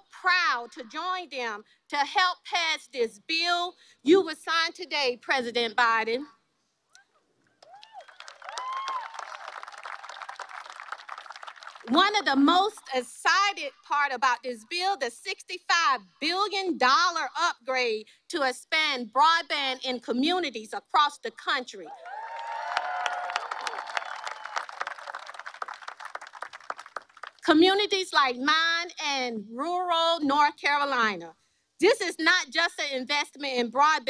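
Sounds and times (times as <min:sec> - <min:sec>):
person cheering: 0:07.6 - 0:09.4, 0:21.9 - 0:24.8
audience applauding: 0:07.6 - 0:11.9, 0:22.1 - 0:27.4.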